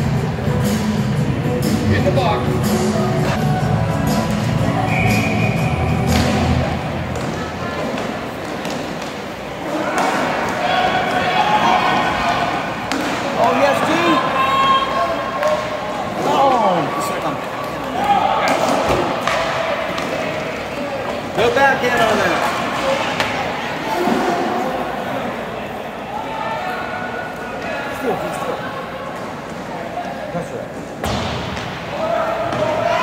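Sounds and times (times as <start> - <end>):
background music: 0.0 - 7.2
clacks and thuds of hockey sticks: 7.1 - 9.2.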